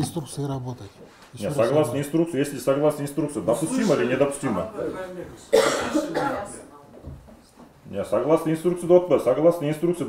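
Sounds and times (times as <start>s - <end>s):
person coughing: 5.5s - 6.5s.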